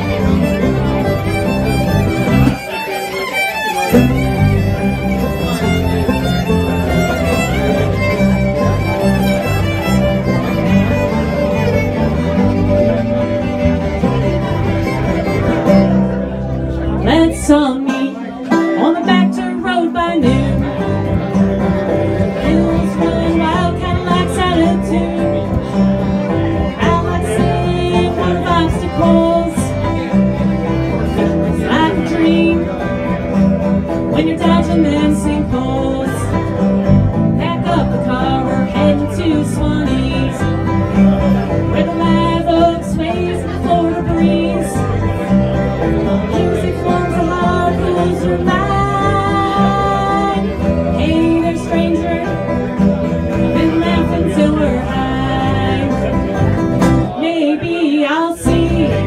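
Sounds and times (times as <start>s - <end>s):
acoustic guitar: 0.0s - 59.0s
banjo: 0.0s - 59.0s
electric bass guitar: 0.0s - 59.0s
fiddle: 0.0s - 59.0s.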